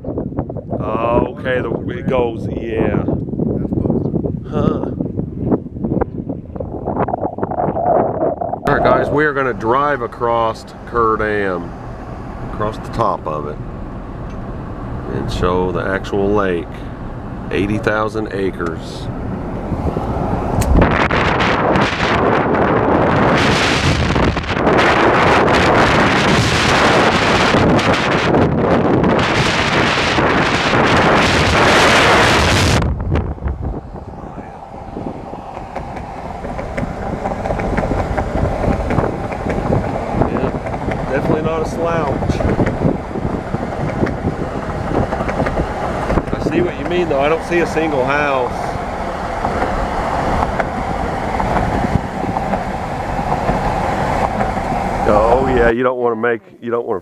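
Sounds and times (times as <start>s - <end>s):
road and engine hum in car: 0.0s - 55.8s
wind buffeting microphone: 0.0s - 55.8s.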